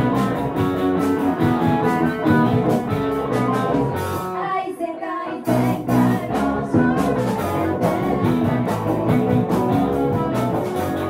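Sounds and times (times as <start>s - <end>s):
drums: 0.0s - 4.5s, 5.4s - 11.0s
live rock band: 0.0s - 4.6s, 5.4s - 11.0s
electric guitar: 0.0s - 11.0s
person singing: 3.5s - 11.0s.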